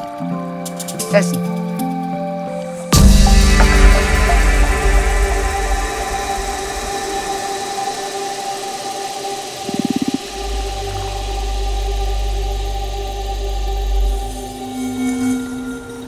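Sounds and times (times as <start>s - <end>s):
deep low drone: 3.0s - 16.0s
trailer music sustained tones: 3.0s - 16.0s
rapid stuttering pulse: 8.6s - 11.0s.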